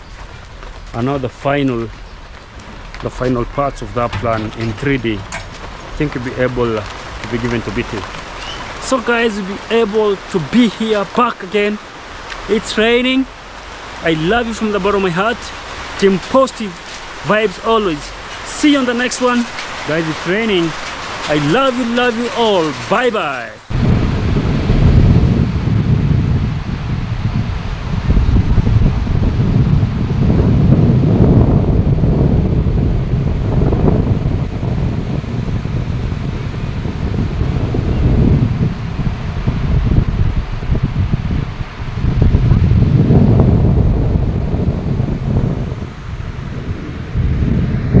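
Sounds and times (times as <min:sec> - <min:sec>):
wind buffeting microphone: 0:00.0 - 0:48.0
sea waves breaking on beach: 0:05.0 - 0:32.0, 0:32.6 - 0:48.0.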